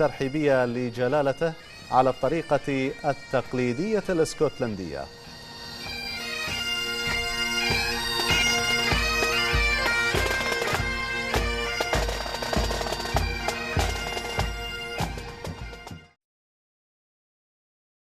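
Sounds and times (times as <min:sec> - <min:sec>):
bagpipes with drone: 0:00.0 - 0:16.2.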